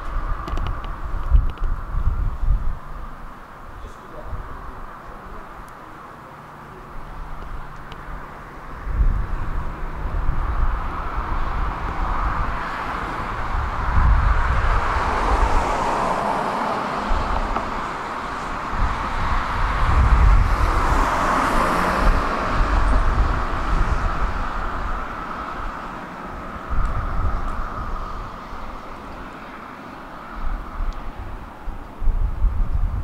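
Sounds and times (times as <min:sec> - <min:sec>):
wind buffeting microphone: 0:00.0 - 0:05.8, 0:06.7 - 0:33.0
road traffic passing: 0:00.0 - 0:33.0.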